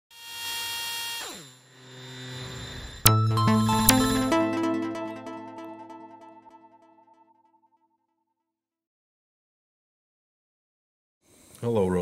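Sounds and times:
electronic tone dropping in pitch: 0:01.2 - 0:07.4.

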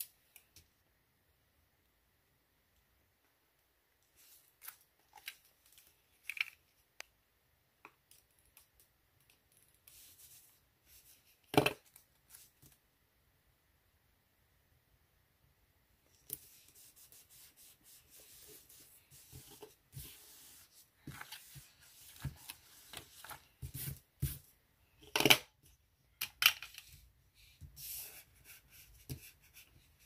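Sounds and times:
paper rustling and rubbing: 0:16.4 - 0:24.4.

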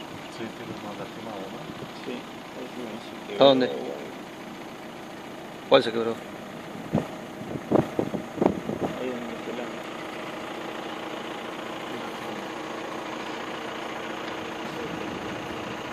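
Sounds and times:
vehicle engine idling: 0:00.0 - 0:15.9.

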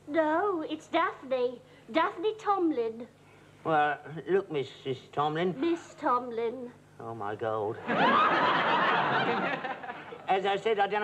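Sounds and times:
studio audience laughing: 0:07.8 - 0:10.3.

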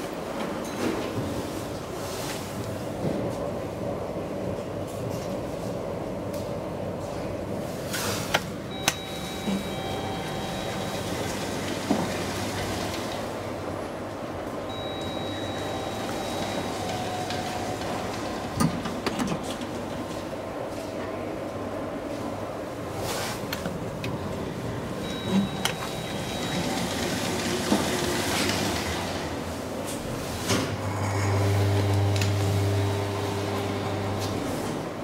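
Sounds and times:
elevator mechanical hum: 0:00.0 - 0:35.0.

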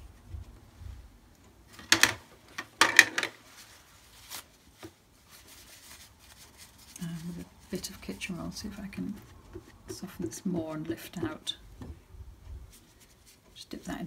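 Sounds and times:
paper crumpling: 0:05.3 - 0:07.8.

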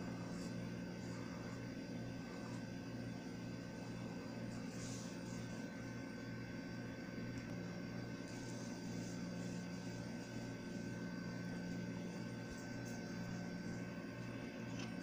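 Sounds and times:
low mechanical hum: 0:00.0 - 0:15.0
thin high whine: 0:00.0 - 0:15.0.

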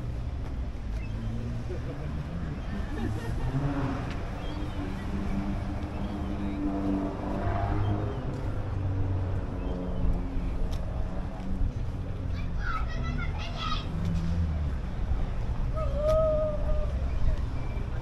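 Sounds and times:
people talking: 0:10.7 - 0:13.9.

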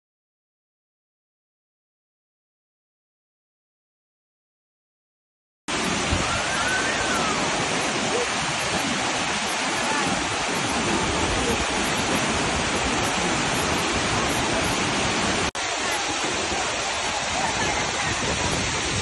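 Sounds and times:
waterfall rushing: 0:05.7 - 0:19.0.

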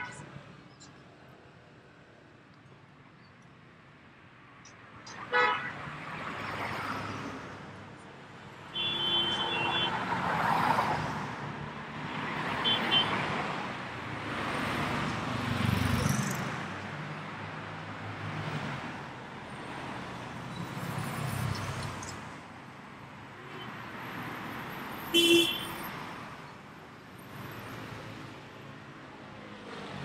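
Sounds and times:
city traffic passing: 0:00.0 - 0:30.0
car horn: 0:08.7 - 0:10.0, 0:12.6 - 0:13.2, 0:25.1 - 0:25.8.

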